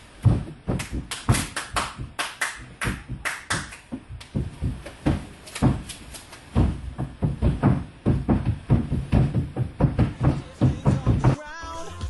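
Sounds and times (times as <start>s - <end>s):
heavy foot stamps: 0.0s - 11.4s
tap dancing footwork: 0.2s - 11.4s.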